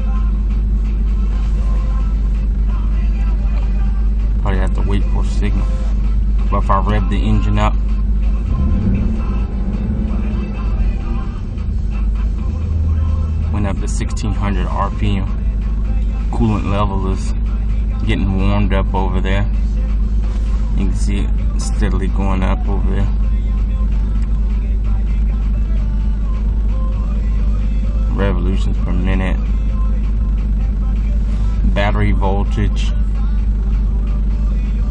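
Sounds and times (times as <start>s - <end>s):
music from car stereo: 0.0s - 34.9s
car engine revving from idle: 5.2s - 17.3s.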